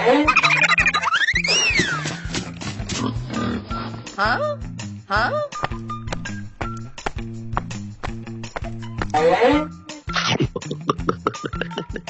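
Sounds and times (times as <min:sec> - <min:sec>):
background music with steady beat: 0:00.2 - 0:12.0.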